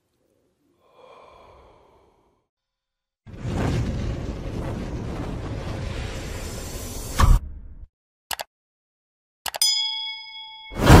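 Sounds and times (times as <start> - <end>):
bell-like ding: 9.6 - 11.0.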